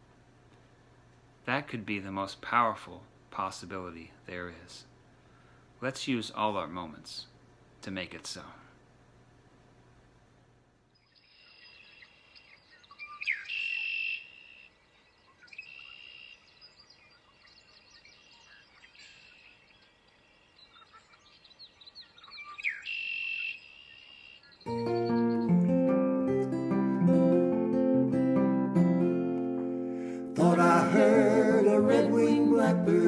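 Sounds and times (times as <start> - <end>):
blackbird singing: 10.9 - 25.6
faint bird chirps: 10.9 - 25.6
acoustic guitar strumming: 24.7 - 33.0.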